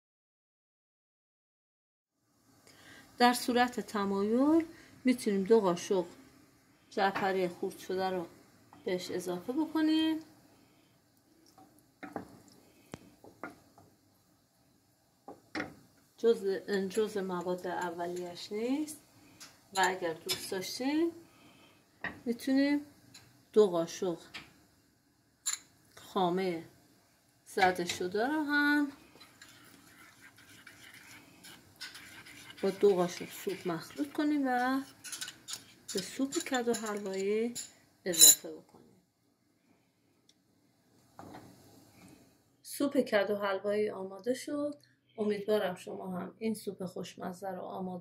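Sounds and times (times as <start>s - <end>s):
wooden spoon stirring thick soup: 29.1s - 37.0s.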